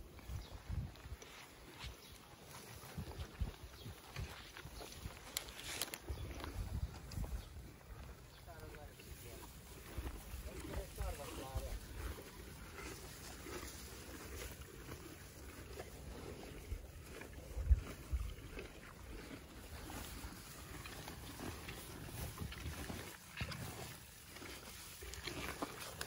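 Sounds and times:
ponies chewing hay: 0.0 - 26.0
rustling leaves and stems: 0.0 - 26.0.

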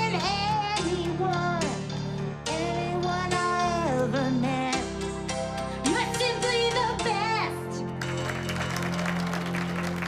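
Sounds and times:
audience applauding: 8.0 - 10.0.

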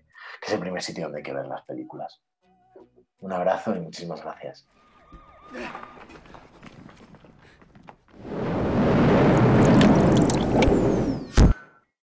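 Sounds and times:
rushing swirling water effect: 8.2 - 11.0.

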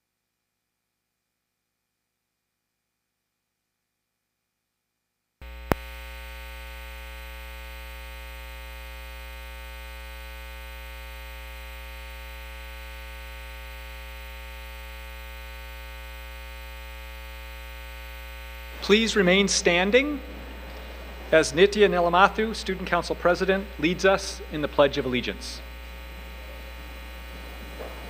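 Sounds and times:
buzzy electrical mains hum: 5.4 - 28.0.

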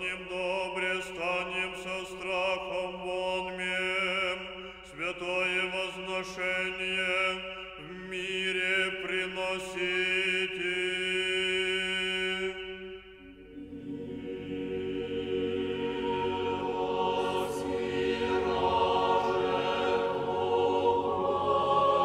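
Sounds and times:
church choir singing unaccompanied: 0.0 - 22.0.

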